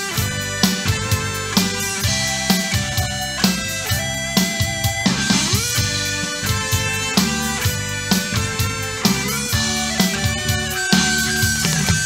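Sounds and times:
drum kit steady beat: 0.0 - 12.0
guitar: 0.0 - 12.0
sustained instruments: 0.0 - 12.0.

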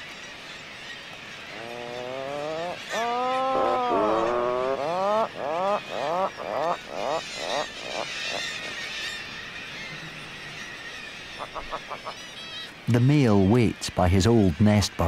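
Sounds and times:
puffin calling: 1.5 - 12.8.

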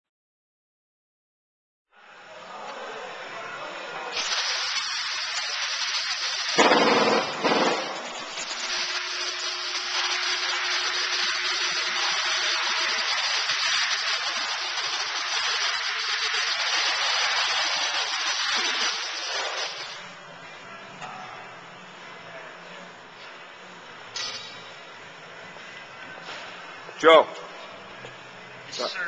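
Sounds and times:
loud rushing hiss: 4.1 - 20.0.

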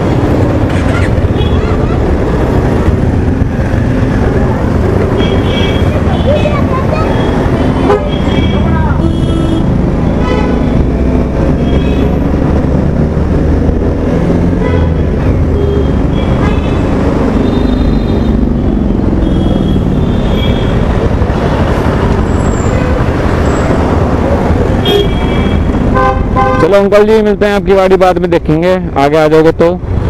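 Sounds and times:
motorcycle engine and road rumble: 0.0 - 30.0
vehicle horn toots: 7.8 - 10.6, 14.6 - 16.8, 19.2 - 20.8, 24.8 - 26.7.

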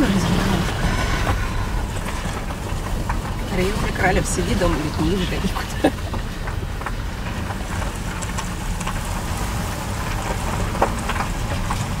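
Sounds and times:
low rumble of engine and road: 0.0 - 12.0
tyres crackling through snow: 0.0 - 12.0.

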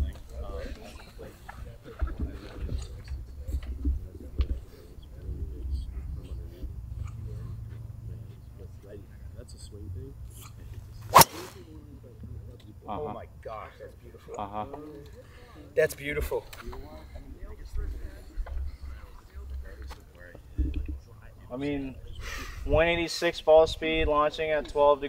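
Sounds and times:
faint background talk: 0.0 - 23.1
golf club striking ball: 11.1 - 11.6.

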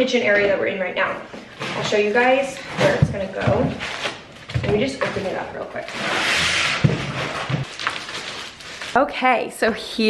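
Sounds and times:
plastic wrap crinkling: 1.5 - 10.0.

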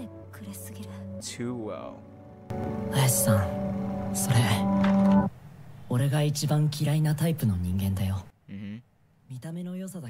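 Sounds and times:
soft background music: 0.0 - 5.4
young man speaking: 8.5 - 8.8.

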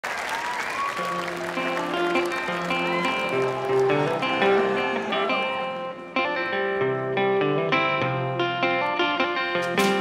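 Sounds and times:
audience applauding: 0.0 - 6.1
band playing sustained notes: 1.2 - 10.0.

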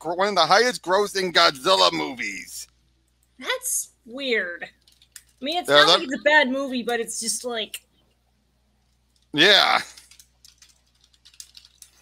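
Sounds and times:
typing on keyboard: 9.5 - 12.0.

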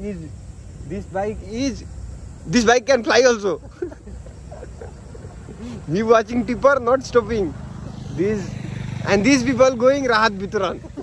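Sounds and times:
vehicle engine hum: 0.0 - 11.0
voices talking loudly: 0.0 - 11.0.

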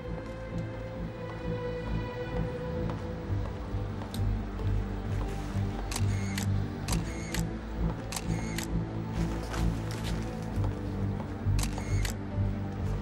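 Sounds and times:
background music: 0.0 - 13.0
camera shutter clicks: 5.9 - 7.5, 8.1 - 8.7, 11.6 - 12.2.

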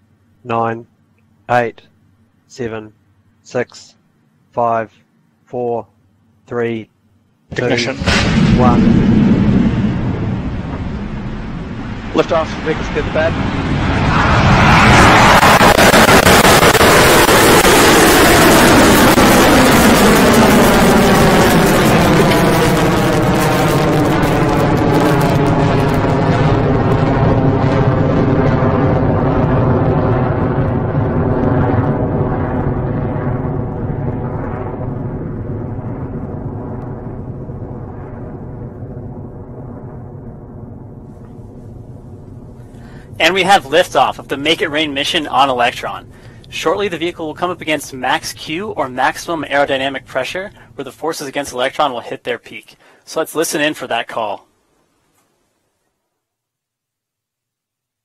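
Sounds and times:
rocket engine roar: 7.5 - 52.0
whooshing sweep falling in pitch: 12.9 - 26.0.

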